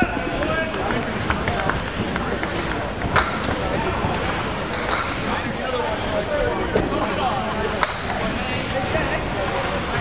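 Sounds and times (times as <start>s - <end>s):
bowling balls rolling: 0.0s - 10.0s
hubbub of voices: 0.0s - 10.0s.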